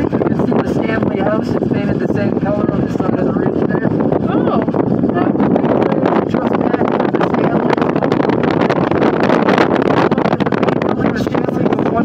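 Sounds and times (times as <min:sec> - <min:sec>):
cable car cabin rushing noise: 0:00.0 - 0:12.0
wind on microphone: 0:00.0 - 0:12.0.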